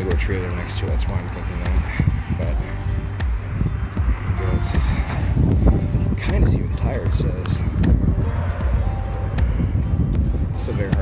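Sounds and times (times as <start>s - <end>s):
road traffic: 0.0s - 11.0s
wind on microphone: 0.0s - 11.0s.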